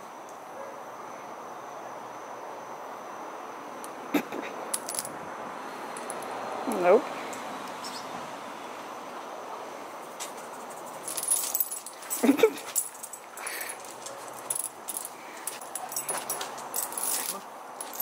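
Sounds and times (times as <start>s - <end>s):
chain collar jingling: 10.4s - 18.0s.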